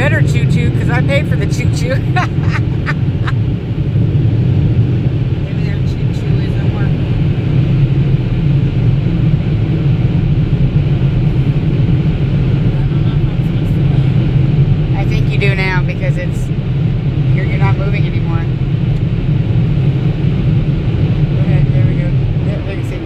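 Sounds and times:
person speaking: 0:00.0 - 0:03.0
low rumble inside car cabin: 0:00.0 - 0:23.0.

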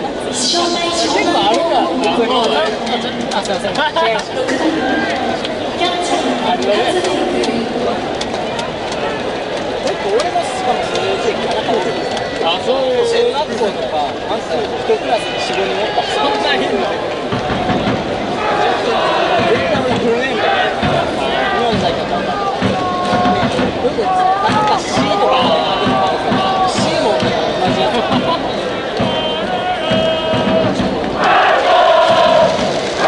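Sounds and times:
crowd chattering: 0:00.0 - 0:33.0.

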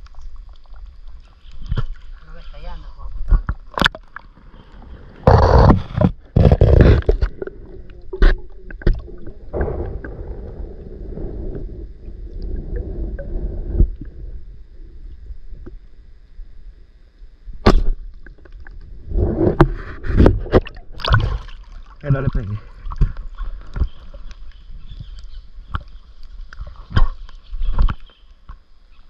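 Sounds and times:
water splashing: 0:00.0 - 0:14.2, 0:17.7 - 0:28.1
muffled underwater river rumble: 0:00.0 - 0:29.0.

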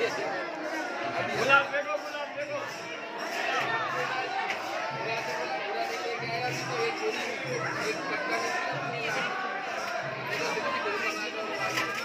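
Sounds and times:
crowd chatter in echoing hall: 0:00.0 - 0:12.0.

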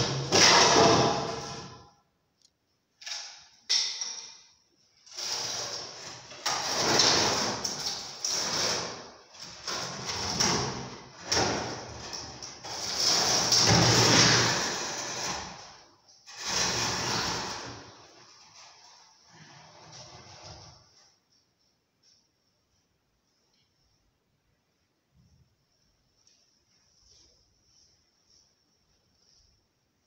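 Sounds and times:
wood scraping on concrete: 0:05.1 - 0:11.4, 0:12.0 - 0:20.9.

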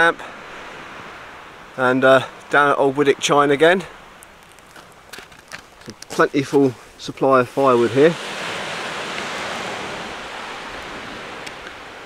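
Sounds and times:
faint waves on shore: 0:00.0 - 0:12.0
steady wind noise: 0:00.0 - 0:12.0.

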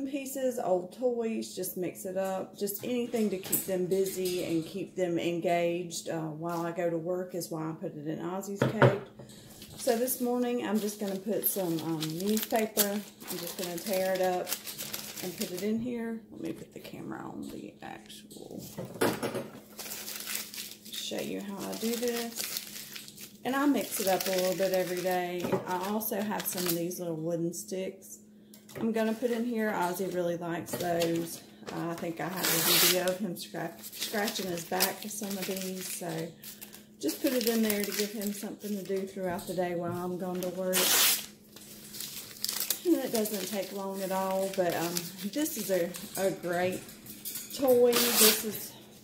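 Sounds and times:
paper rustling: 0:09.6 - 0:15.6, 0:19.7 - 0:26.8, 0:33.8 - 0:39.1, 0:40.2 - 0:46.4
newspaper tearing and crumpling: 0:09.8 - 0:15.6, 0:19.6 - 0:26.8, 0:32.2 - 0:39.0, 0:40.3 - 0:46.1, 0:47.8 - 0:48.6.

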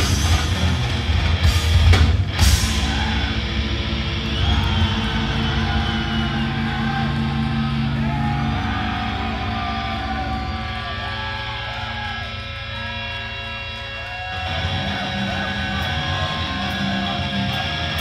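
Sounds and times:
bass: 0:00.0 - 0:18.0
distorted electric guitars: 0:00.0 - 0:18.0
heavy metal band playing: 0:00.0 - 0:18.0.

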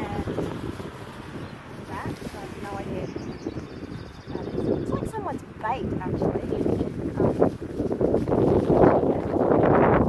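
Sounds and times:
plastic bag rustling: 0:00.0 - 0:03.2, 0:05.9 - 0:09.6
wind buffeting microphone: 0:00.0 - 0:10.0.

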